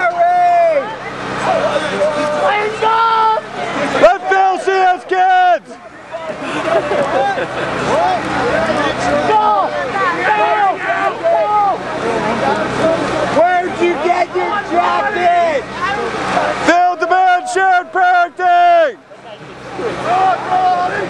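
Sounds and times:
people talking over one another: 0.0s - 21.0s.

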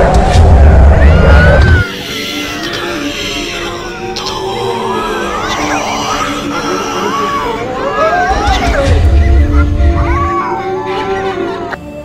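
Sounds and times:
eerie music drone: 0.0s - 12.0s
cat yowling: 1.0s - 11.5s.

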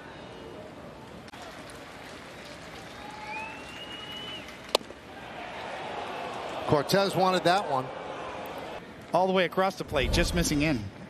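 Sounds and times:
faint whistle: 3.0s - 4.5s.

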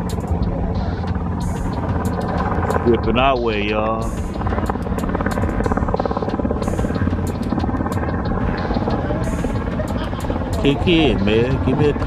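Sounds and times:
car engine rumbling: 0.0s - 12.0s
music playing: 0.0s - 12.0s.

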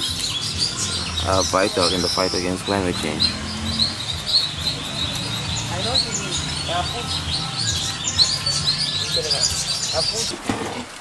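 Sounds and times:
birds chirping: 0.0s - 10.4s.

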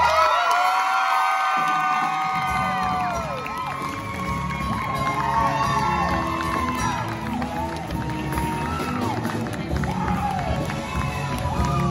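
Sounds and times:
audience cheering and whooping: 0.0s - 11.9s
band playing: 0.0s - 11.9s.

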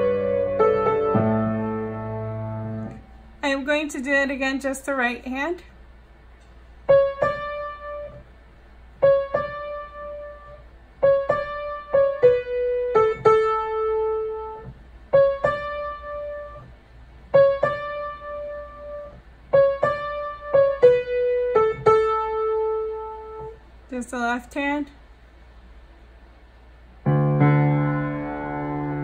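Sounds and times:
upright piano notes: 0.0s - 4.1s, 6.4s - 23.6s, 27.0s - 29.0s.

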